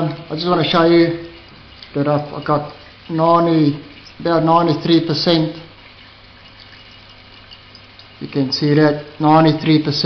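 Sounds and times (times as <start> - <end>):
running liquid: 0.0 - 10.0.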